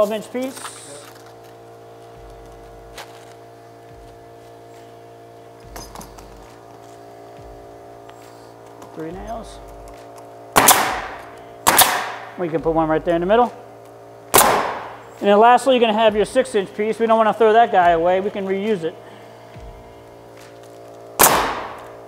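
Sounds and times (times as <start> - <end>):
steady hum: 0.0 - 22.0
nail gun shots: 10.5 - 12.4, 14.3 - 15.0, 21.2 - 22.0.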